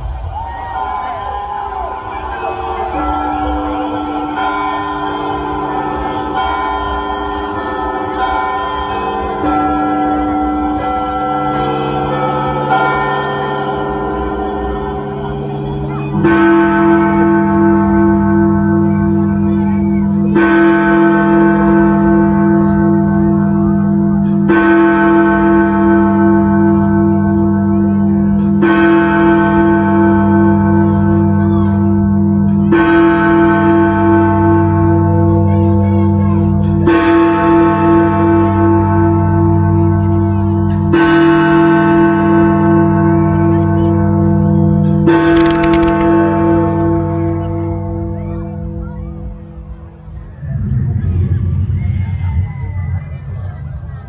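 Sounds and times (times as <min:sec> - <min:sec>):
deep bell tolling: 0:00.0 - 0:49.6.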